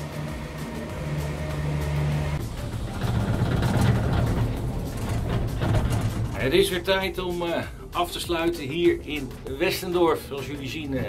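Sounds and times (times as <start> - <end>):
low mechanical hum of machinery: 0.0 - 6.6
rough mechanical rattling: 0.0 - 9.3.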